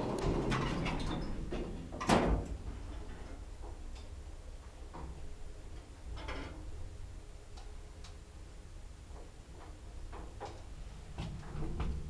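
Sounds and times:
elevator drive rumble: 0.0 - 12.0.

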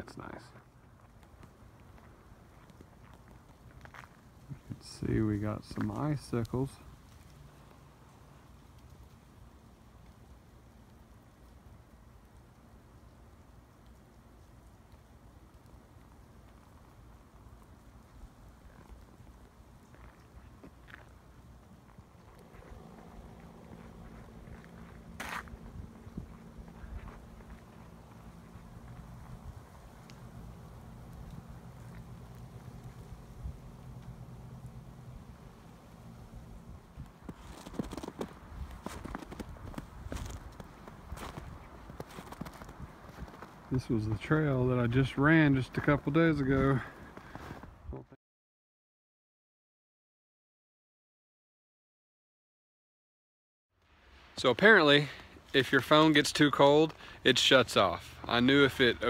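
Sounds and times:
faint low hum: 0.0 - 48.1
footsteps in snow: 18.6 - 44.3, 46.7 - 47.7.

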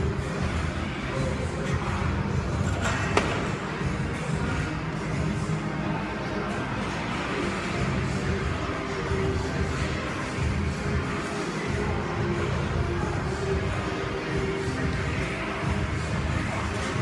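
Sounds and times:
music playing: 0.0 - 17.0.

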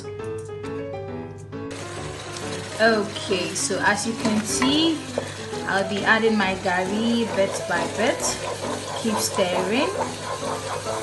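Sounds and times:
soft piano music: 0.0 - 8.4
stew sizzling in a pot: 1.7 - 11.0
wooden spatula stirring: 1.7 - 11.0.

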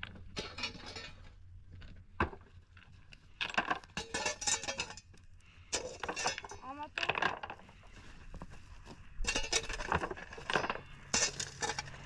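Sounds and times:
stones clinking together: 3.4 - 7.6, 9.2 - 12.0.

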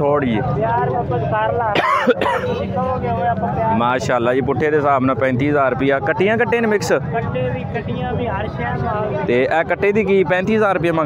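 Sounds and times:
men talking: 0.0 - 11.0
man coughing: 1.7 - 2.7.

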